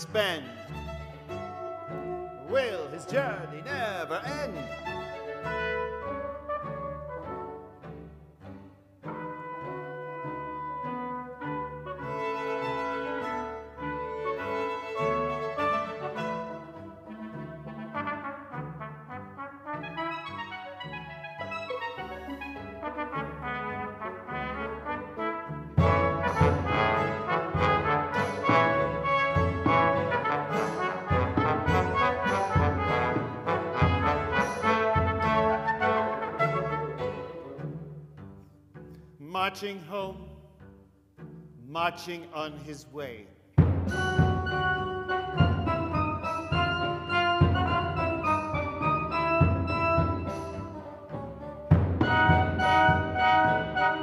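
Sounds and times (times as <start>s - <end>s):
chamber ensemble playing: 0.0s - 38.3s, 43.8s - 54.0s.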